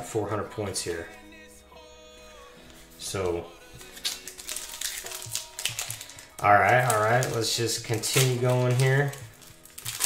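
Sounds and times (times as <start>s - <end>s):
faint background music: 0.0s - 10.0s
foil wrapper crinkling: 3.7s - 10.0s.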